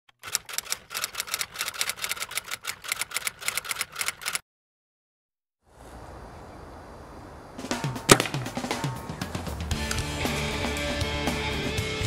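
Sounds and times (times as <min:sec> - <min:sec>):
typewriter keys clacking: 0:00.2 - 0:04.4.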